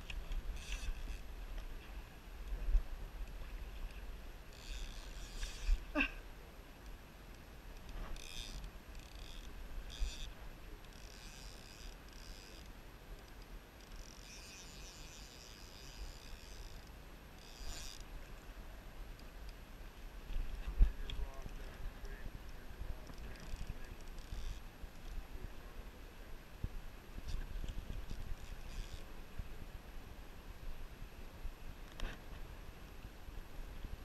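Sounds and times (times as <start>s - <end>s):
fishing reel drag buzzing: 0.0s - 1.3s, 3.2s - 6.0s, 7.8s - 18.1s, 22.9s - 25.1s, 27.3s - 29.1s
wind rumble on microphone: 20.1s - 34.0s.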